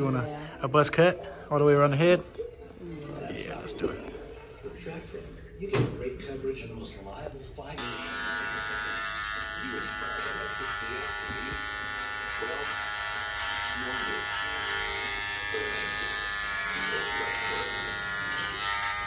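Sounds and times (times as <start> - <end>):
electric hair clippers buzzing: 7.8 - 19.0.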